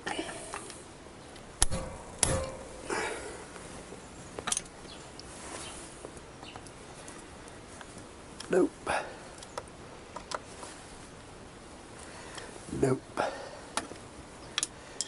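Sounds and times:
handling noises: 1.3s - 8.6s.

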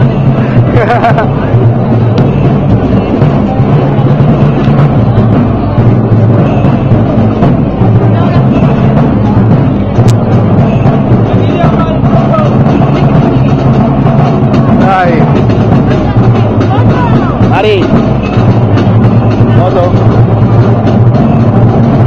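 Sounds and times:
heavy bass drum: 0.0s - 22.0s
parade band playing march: 0.0s - 22.0s.

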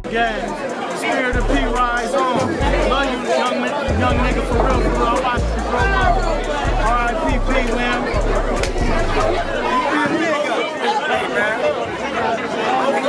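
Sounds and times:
music with deep bass beat: 0.0s - 9.9s
crowd chatter: 0.0s - 13.0s.

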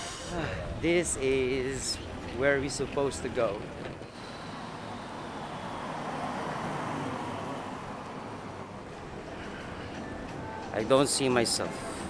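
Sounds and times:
street traffic rush: 0.0s - 12.0s
vehicle passing: 4.0s - 10.4s.

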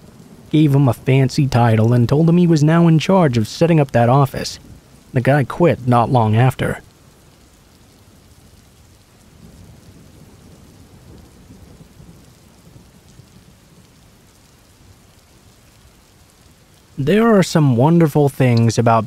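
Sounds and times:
steady rain: 0.0s - 19.0s
low rumble of thunder: 8.1s - 16.6s.

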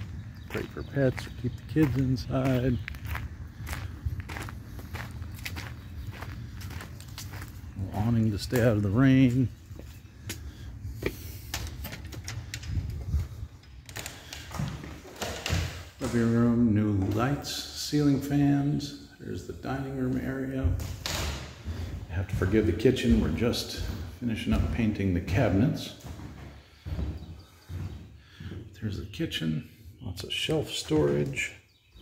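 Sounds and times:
faint background noise: 0.0s - 32.0s
doors opening with clicks and thumps: 10.9s - 18.3s, 20.0s - 29.4s, 30.2s - 32.0s
footsteps on floor: 20.1s - 28.8s.

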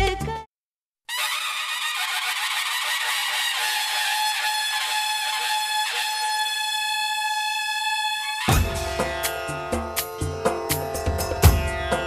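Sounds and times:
conch shell blown: 1.1s - 9.3s
sharp strikes: 8.5s - 12.0s.

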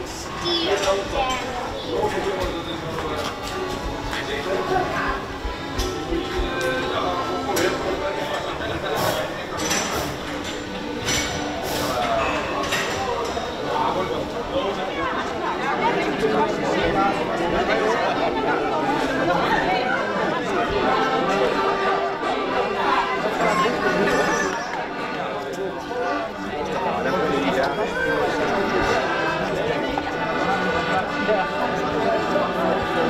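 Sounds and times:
background music: 0.0s - 12.8s, 13.4s - 33.0s
chatter of many people: 0.0s - 33.0s.

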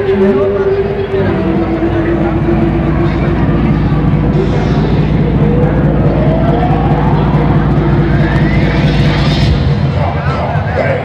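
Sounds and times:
rising whine: 0.0s - 11.0s
steady low hum: 0.0s - 11.0s.

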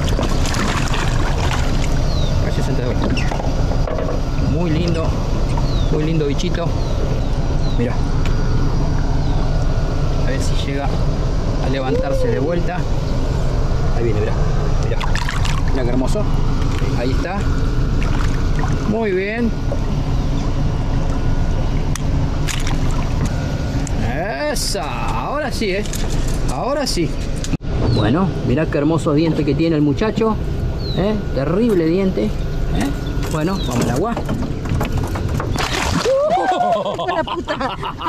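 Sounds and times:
water trickling: 0.0s - 2.2s
boat motor idling: 0.0s - 27.4s, 28.0s - 36.0s
people exclaiming: 11.8s - 12.6s, 35.8s - 38.0s.

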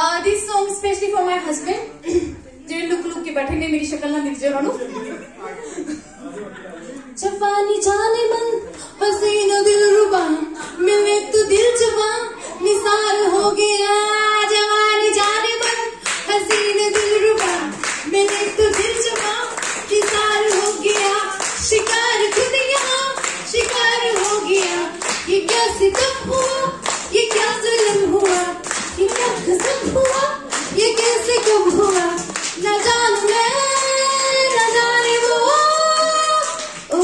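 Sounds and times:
woman singing into a microphone: 7.2s - 37.0s
people clapping along: 14.8s - 37.0s.

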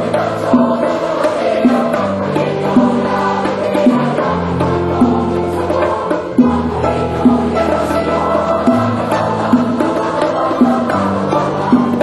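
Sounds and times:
choir singing in parts: 0.0s - 12.0s.

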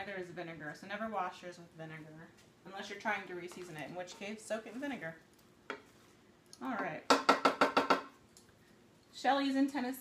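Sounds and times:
wooden spatula knocking on skillet: 6.8s - 8.1s.

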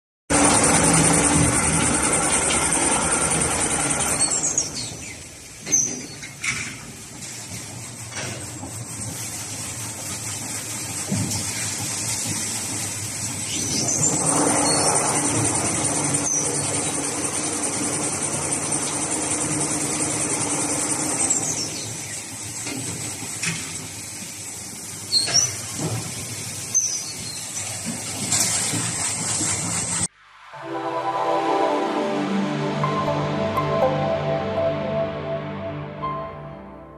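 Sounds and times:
high mechanical whine: 0.3s - 5.5s, 13.6s - 22.8s
toilet paper rewinding machine: 0.3s - 30.1s.

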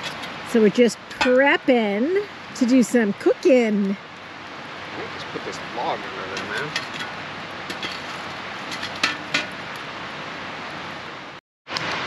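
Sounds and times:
river rushing: 4.0s - 12.0s.

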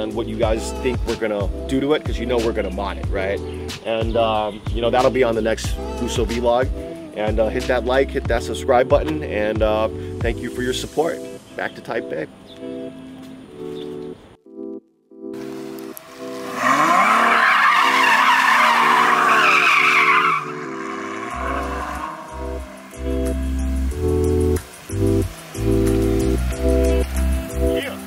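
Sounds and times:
background music: 0.0s - 28.0s
heavy bass beat: 0.3s - 3.4s, 4.0s - 10.4s, 21.4s - 27.9s
car engine revving: 15.5s - 28.0s
tyres squealing: 16.4s - 23.5s.

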